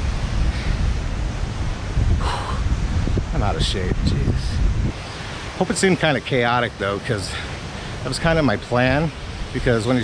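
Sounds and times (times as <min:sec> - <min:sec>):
surf: 0:00.0 - 0:10.0
wind buffeting microphone: 0:00.0 - 0:10.0
person breathing heavily: 0:02.1 - 0:03.1.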